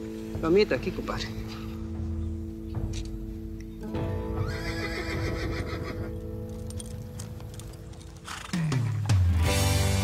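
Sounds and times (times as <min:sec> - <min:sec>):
background music: 0:00.0 - 0:10.0
horse whinnying: 0:04.4 - 0:06.3.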